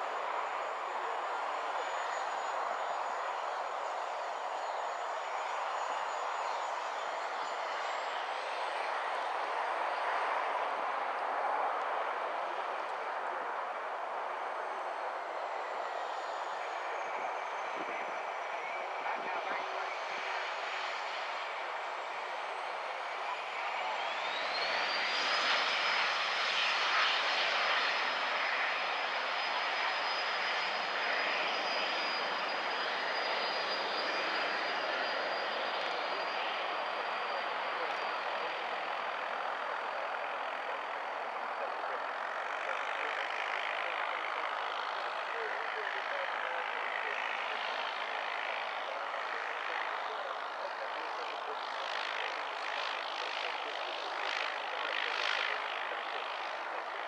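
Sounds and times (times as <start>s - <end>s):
jet engines whining and roaring: 0.0s - 57.0s.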